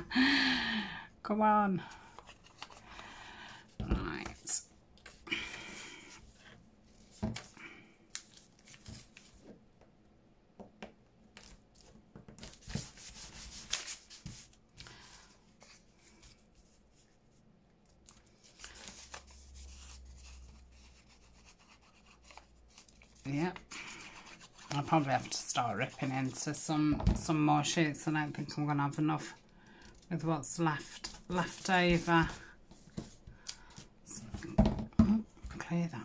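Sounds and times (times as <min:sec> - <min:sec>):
paper rustling: 0:02.1 - 0:03.0, 0:06.9 - 0:09.6, 0:11.4 - 0:17.2, 0:17.9 - 0:20.9, 0:30.8 - 0:33.9
paper rubbing on book page: 0:12.4 - 0:17.4, 0:18.4 - 0:26.7, 0:30.5 - 0:33.2.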